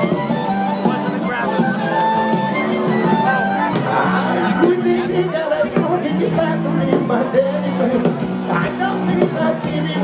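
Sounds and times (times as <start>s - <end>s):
harmonica bending notes: 0.0s - 6.9s
live band playing: 0.0s - 10.0s.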